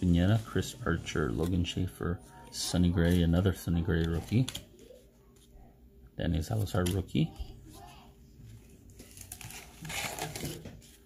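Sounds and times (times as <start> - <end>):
paper cards rustling and sliding: 0.0 - 5.5, 8.4 - 11.0.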